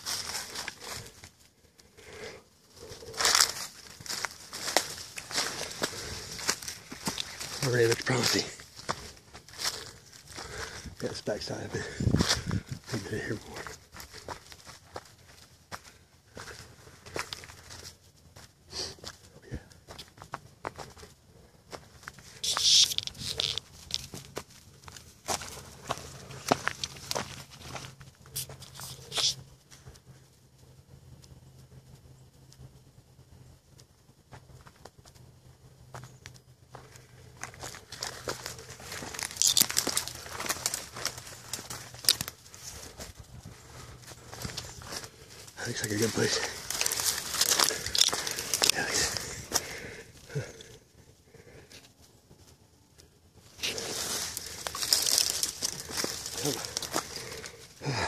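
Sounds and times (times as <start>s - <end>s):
footsteps through dry leaves: 0.0s - 1.3s, 2.8s - 18.0s, 21.7s - 29.4s, 36.7s - 50.0s, 53.4s - 58.0s
twigs scraping and snapping: 0.0s - 18.0s, 21.7s - 30.1s, 35.9s - 50.8s, 53.0s - 58.0s.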